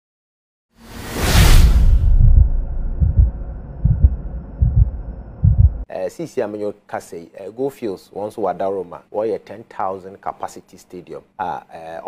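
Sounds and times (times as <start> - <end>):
low drone: 1.4 - 5.8
deep bass thumps: 2.0 - 5.8.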